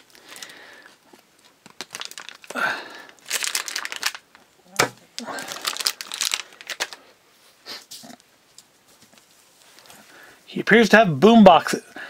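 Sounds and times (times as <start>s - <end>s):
plastic wrapper crinkling: 0.0s - 7.1s.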